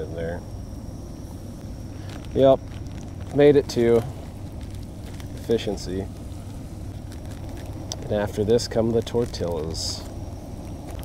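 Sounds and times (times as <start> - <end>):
camp stove burner rumbling: 0.0 - 11.0
fish frying crackles: 1.9 - 11.0.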